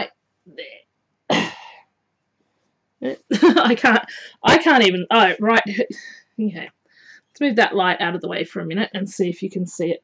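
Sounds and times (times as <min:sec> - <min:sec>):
woman coughing: 0:01.3 - 0:01.9.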